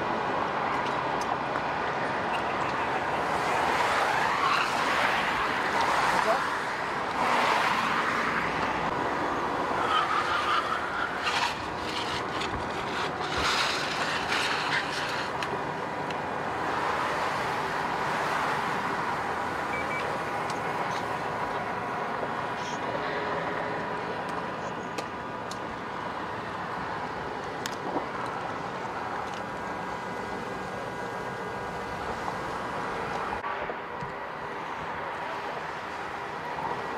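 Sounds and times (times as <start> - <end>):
highway traffic rushing: 0.0 - 36.9.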